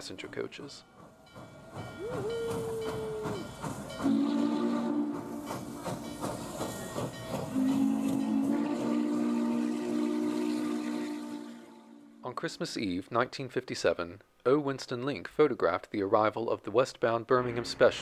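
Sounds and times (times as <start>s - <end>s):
steam locomotive hissing: 0.2s - 11.8s
steam whistle blasts: 4.0s - 5.4s, 7.5s - 12.2s.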